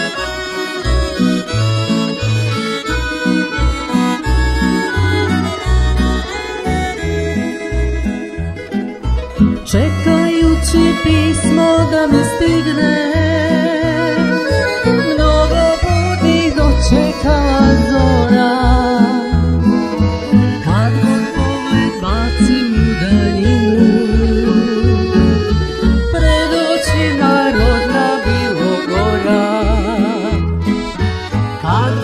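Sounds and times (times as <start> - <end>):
accordion: 0.0 - 32.0
double bass: 0.0 - 32.0
tamburicas: 0.0 - 32.0
violin: 0.0 - 32.0
woman singing with vibrato: 9.6 - 19.4, 20.0 - 25.5, 26.1 - 30.4.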